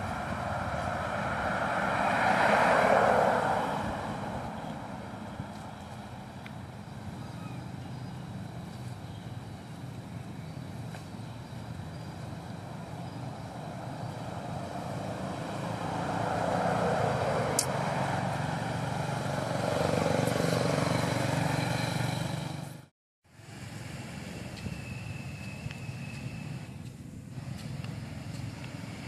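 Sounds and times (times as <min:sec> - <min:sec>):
vehicle engine humming: 0:00.0 - 0:29.0.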